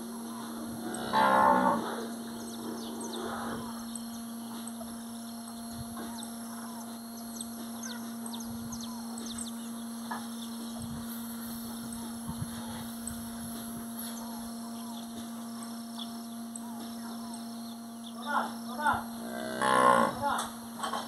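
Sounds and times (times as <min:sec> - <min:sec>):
cattle bellowing: 0:00.3 - 0:03.9, 0:19.2 - 0:20.4.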